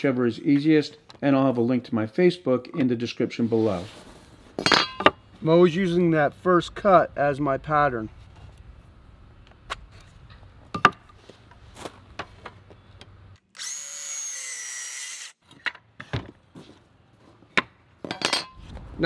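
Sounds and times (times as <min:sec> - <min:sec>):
circular saw cutting wood: 0:13.5 - 0:15.4.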